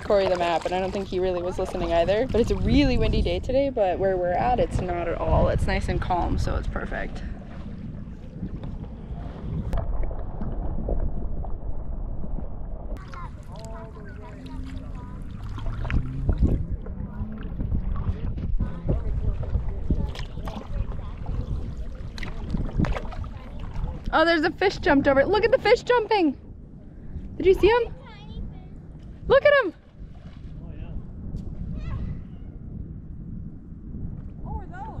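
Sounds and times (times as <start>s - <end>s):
paddles splashing in water: 0.0s - 3.6s, 4.2s - 26.2s, 28.9s - 30.6s
low microphone rumble: 0.0s - 35.0s.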